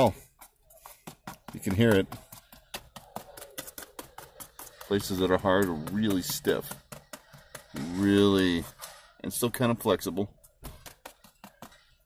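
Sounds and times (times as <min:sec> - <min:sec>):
fingertips tapping on paper: 0:00.1 - 0:09.1, 0:10.3 - 0:12.0.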